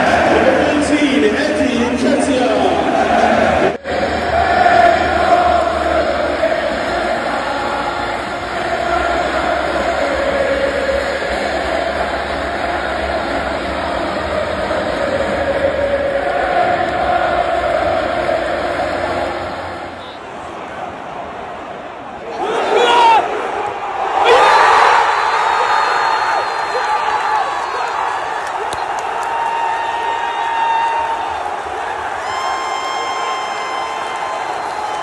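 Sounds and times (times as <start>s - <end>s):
stadium crowd chanting: 0.0s - 35.0s.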